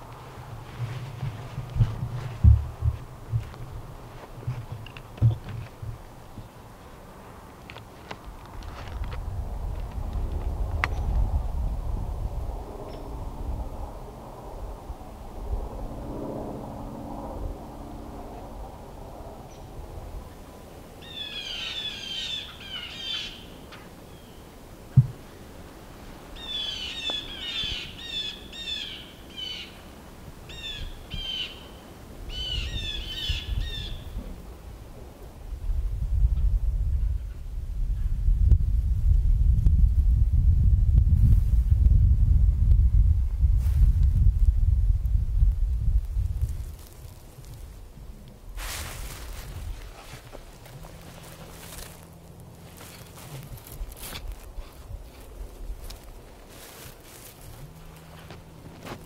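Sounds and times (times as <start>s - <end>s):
bird calling: 21.0s - 24.4s, 26.4s - 29.9s, 30.5s - 34.2s.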